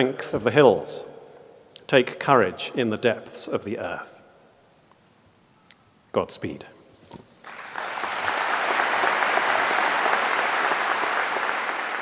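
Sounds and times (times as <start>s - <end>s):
audience applauding: 7.4s - 12.0s.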